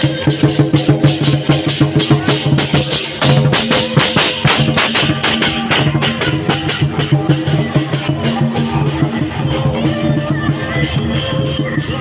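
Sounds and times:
large drum beating: 0.0 - 11.2
hand cymbals clashing: 0.0 - 11.4.

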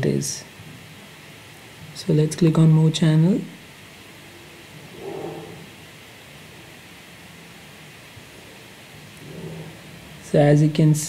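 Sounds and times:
faint hum: 0.0 - 11.0
low steady hiss: 0.0 - 11.0.

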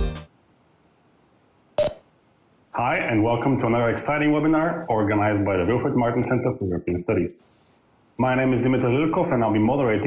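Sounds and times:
man speaking: 2.7 - 7.5, 8.2 - 10.0.

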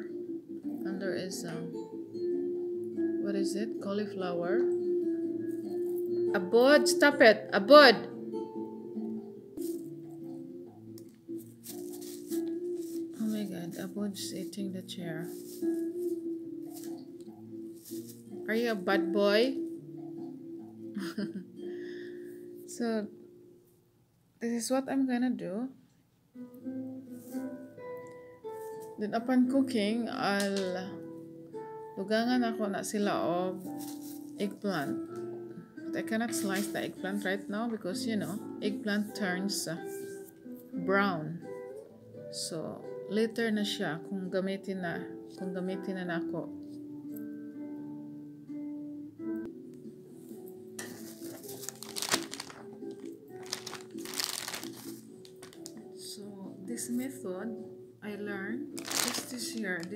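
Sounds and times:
background music held notes: 0.0 - 23.8, 26.4 - 59.9
plastic bags crinkling: 11.5 - 14.3, 33.7 - 34.5, 50.8 - 55.9, 58.7 - 59.9.

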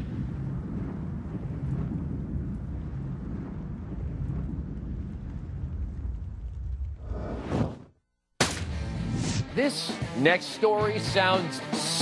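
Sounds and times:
dense low rumble: 0.0 - 7.8.

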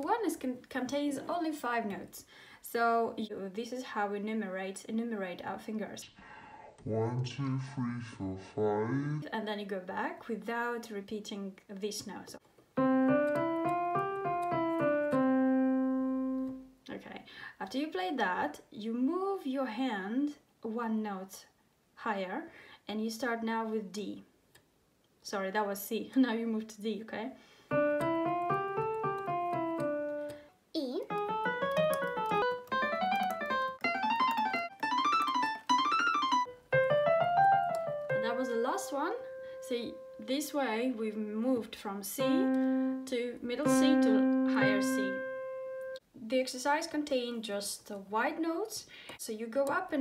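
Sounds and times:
digital piano playing scale: 12.8 - 16.7, 27.7 - 30.4, 31.1 - 40.3, 42.2 - 46.0.

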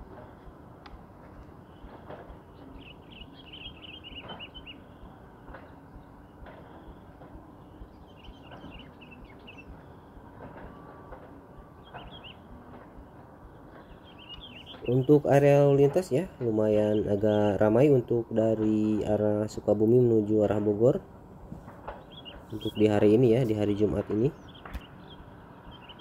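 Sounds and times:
birds chirping: 0.0 - 26.0
low steady background noise: 0.0 - 26.0.

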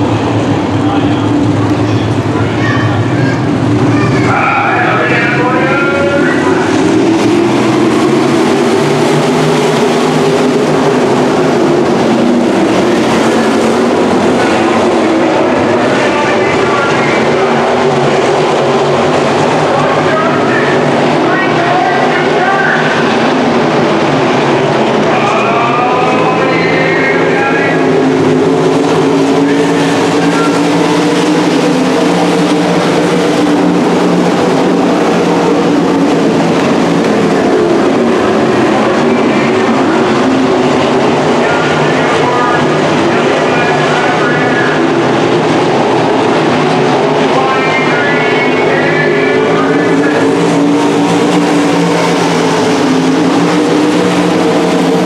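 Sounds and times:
race car engines at high revs: 3.0 - 55.0.

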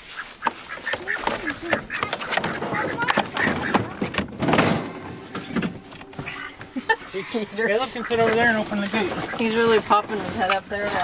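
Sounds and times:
indistinct voices: 0.8 - 11.0
knocks and thumps in vehicle cab: 1.2 - 6.1
loud thud: 2.4 - 5.9.

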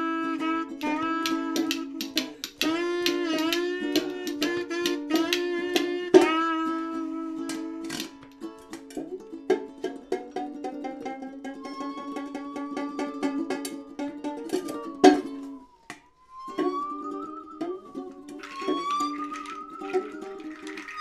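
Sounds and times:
plucked strings: 0.0 - 21.0
high gliding tone: 14.7 - 21.0.

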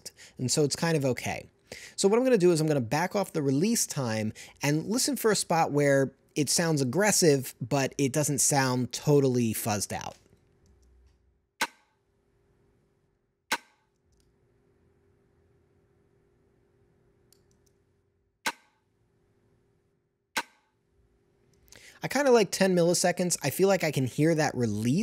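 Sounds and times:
faint steady hum: 0.0 - 11.2.

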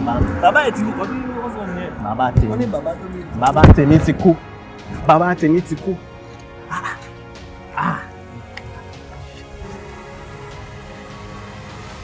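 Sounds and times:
background music: 0.0 - 12.0
man crying out: 6.7 - 8.4.

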